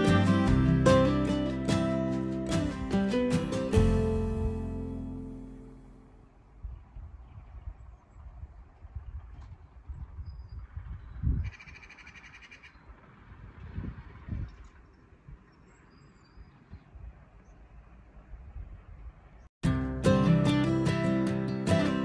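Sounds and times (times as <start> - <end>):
wind buffeting microphone: 6.5 - 19.5
bird calling: 11.4 - 13.0.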